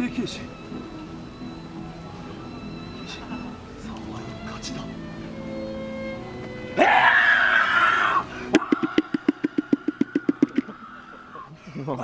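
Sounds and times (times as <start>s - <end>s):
man screaming: 6.8s - 8.3s.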